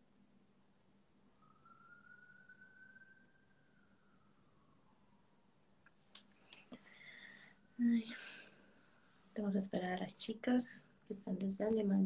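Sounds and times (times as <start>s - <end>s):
faint low hum: 0.0s - 12.0s
thin whistle-like tone: 1.3s - 5.4s.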